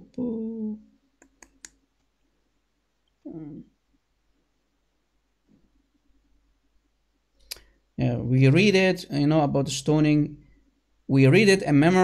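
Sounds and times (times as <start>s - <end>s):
computer mouse clicks: 1.2s - 1.8s.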